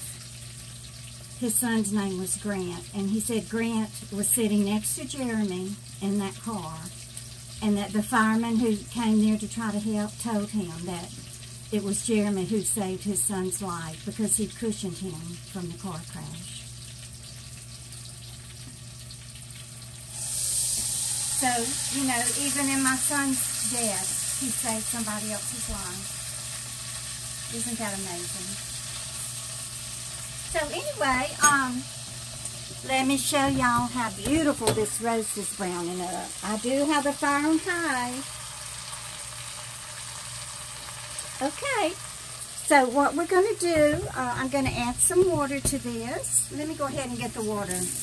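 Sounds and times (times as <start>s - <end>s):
meat sizzling in a pot: 0.0s - 48.0s.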